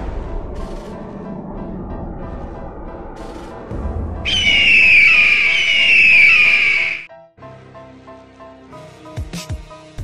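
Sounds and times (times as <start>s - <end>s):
hawk screech: 4.3s - 7.1s.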